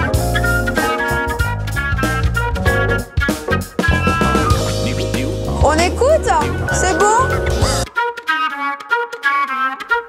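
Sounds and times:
flute melody: 0.0s - 10.0s.

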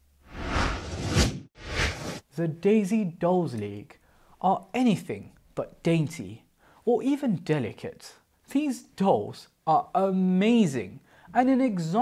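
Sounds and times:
whoosh transition effects: 0.3s - 2.2s.

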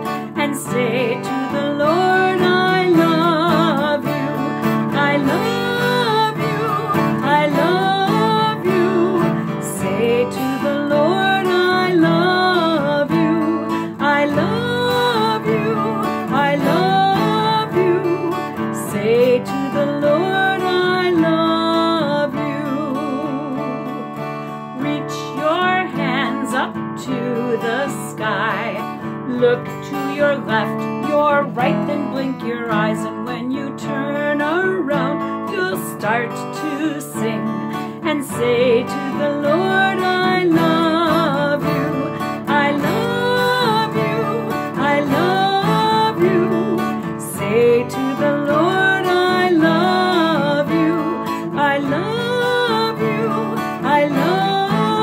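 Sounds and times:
acoustic guitar strumming: 0.0s - 55.0s
woman singing: 0.0s - 55.0s.

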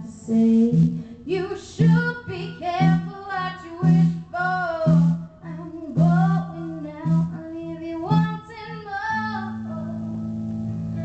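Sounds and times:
woman singing into microphone: 0.0s - 10.5s.

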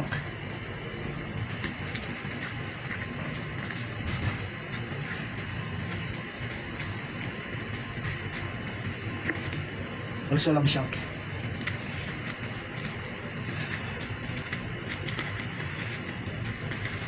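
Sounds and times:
steady background hum: 0.0s - 17.0s.

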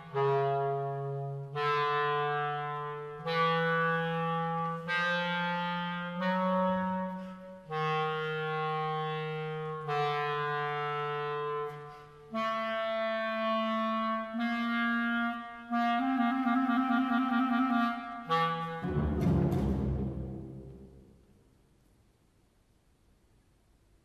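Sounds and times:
clarinet playing long notes: 0.0s - 19.2s
string orchestra: 18.4s - 21.1s.

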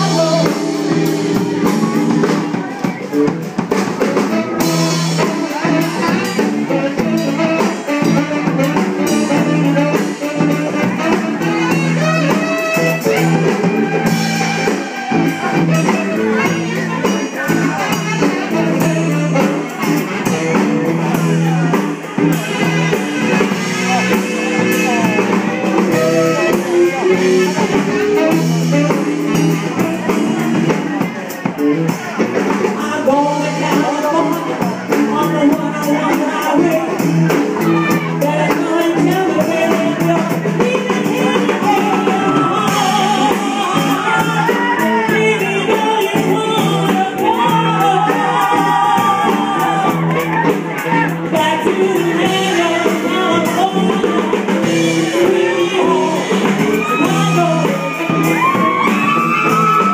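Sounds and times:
drum kit: 0.0s - 59.9s
electric bass: 0.0s - 59.9s
electric guitar: 0.0s - 59.9s
saxophone: 0.0s - 59.9s.

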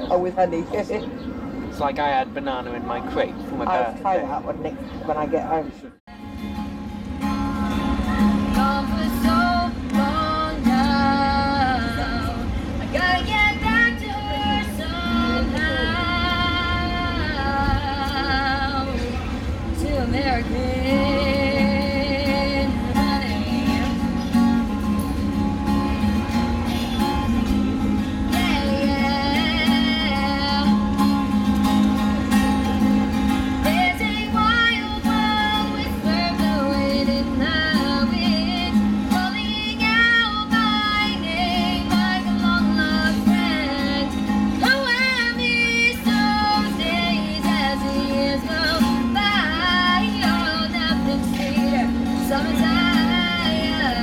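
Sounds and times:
acoustic guitar strumming: 6.1s - 54.0s
woman singing with vibrato: 7.3s - 25.0s, 27.0s - 31.6s, 33.4s - 54.0s.

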